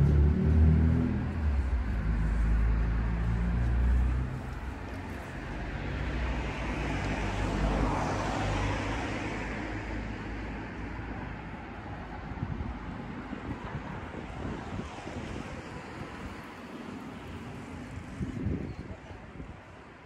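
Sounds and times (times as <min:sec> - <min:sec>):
car passing on street: 0:00.0 - 0:18.4.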